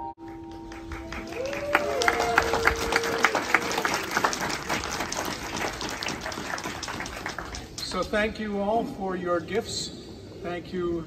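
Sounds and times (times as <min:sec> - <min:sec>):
crowd applauding outdoors: 0:00.2 - 0:08.0.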